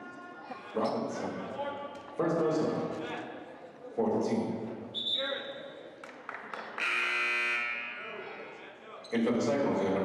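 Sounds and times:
scoreboard buzzer: 6.8s - 8.2s.

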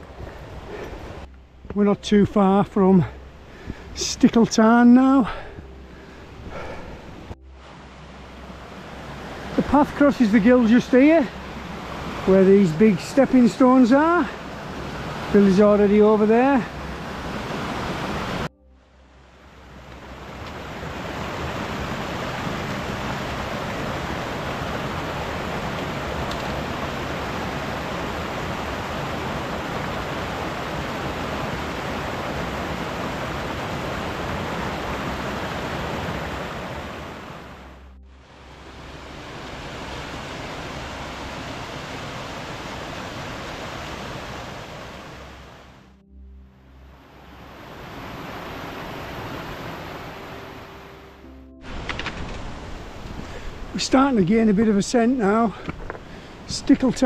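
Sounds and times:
stream rushing over boulders: 0.0s - 18.5s, 19.3s - 46.0s, 47.2s - 57.0s.

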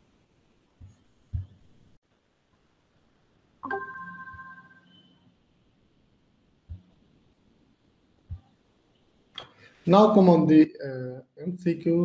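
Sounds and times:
notification chime: 3.6s - 5.1s.

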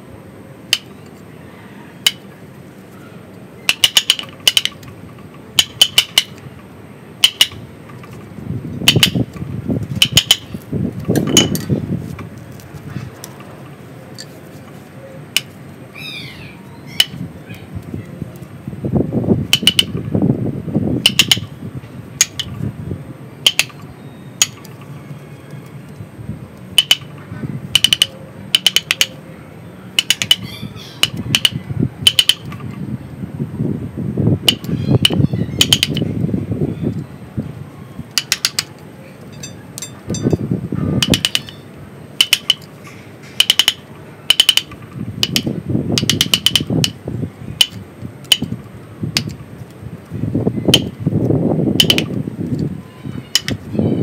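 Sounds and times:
mallet tapping steel chisel: 22.2s - 22.5s, 23.5s - 23.8s, 27.8s - 29.2s, 30.0s - 30.4s, 35.6s - 36.0s, 38.2s - 38.7s, 41.0s - 41.6s, 42.2s - 42.7s, 43.4s - 47.0s, 51.8s - 52.1s, 53.4s - 53.6s.

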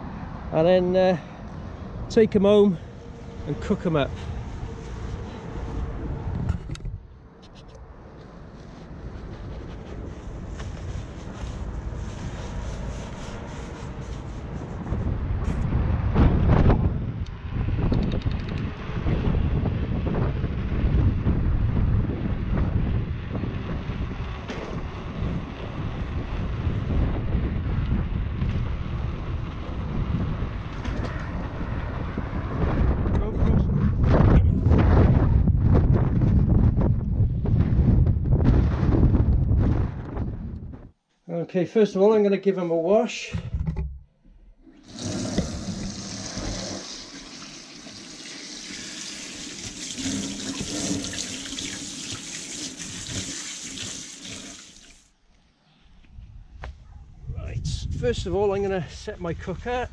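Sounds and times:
motorway traffic: 0.0s - 38.0s
wind buffeting microphone: 1.5s - 8.1s, 8.8s - 41.0s, 56.1s - 59.9s.

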